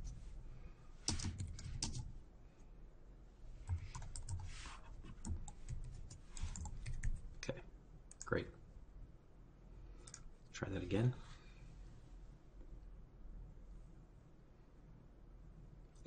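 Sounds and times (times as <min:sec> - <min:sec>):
typing on computer keyboard: 0:01.1 - 0:02.1, 0:03.6 - 0:04.5, 0:05.2 - 0:07.2.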